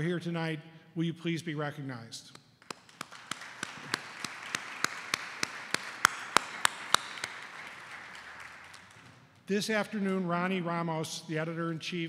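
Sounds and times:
close hand claps: 0:02.3 - 0:09.5
audience applause: 0:02.6 - 0:09.2.

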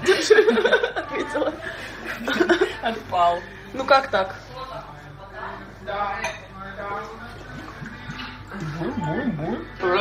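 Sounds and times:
women talking: 0:00.6 - 0:07.0.

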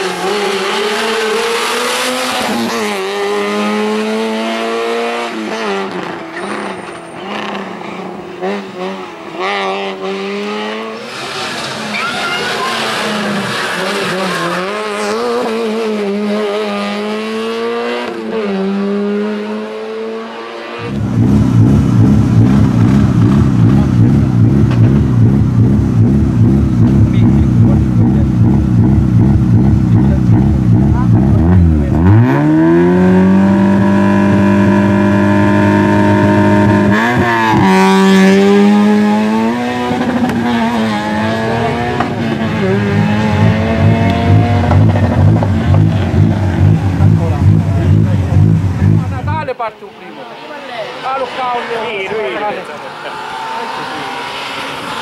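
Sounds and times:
race car engine revving: 0:00.0 - 0:49.6, 0:50.2 - 0:55.0.

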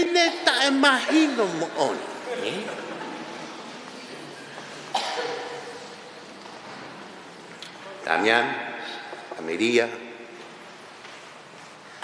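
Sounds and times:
loud cough with echo: 0:00.1 - 0:03.4, 0:04.8 - 0:05.9.

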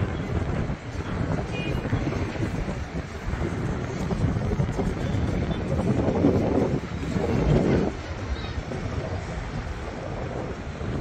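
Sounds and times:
faint city noise: 0:00.0 - 0:11.0
wind buffeting microphone: 0:00.0 - 0:11.0.

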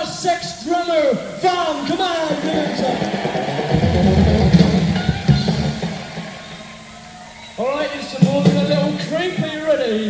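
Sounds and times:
electric guitar: 0:02.3 - 0:07.5
heavy bass: 0:03.7 - 0:06.2.

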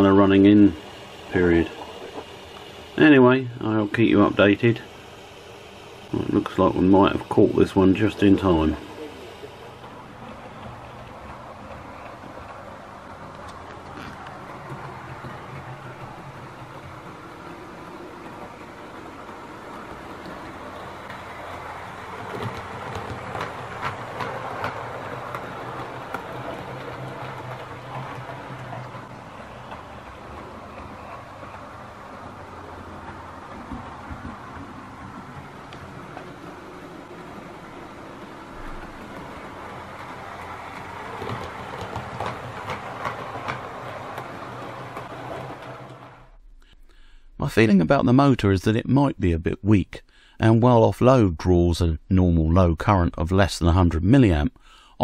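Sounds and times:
wheels clicking over rail joints: 0:00.0 - 0:05.0, 0:06.0 - 0:46.4
model train motor hum: 0:00.0 - 0:46.4.

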